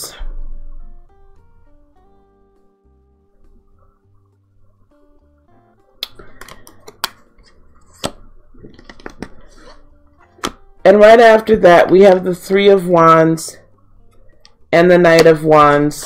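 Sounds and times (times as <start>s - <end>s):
quiet plucked guitar music: 0.0s - 16.0s
cards slapping on table: 7.9s - 8.2s.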